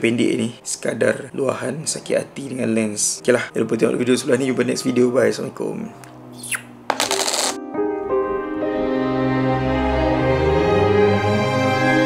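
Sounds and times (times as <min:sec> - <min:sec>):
soft background music: 0:00.0 - 0:06.3.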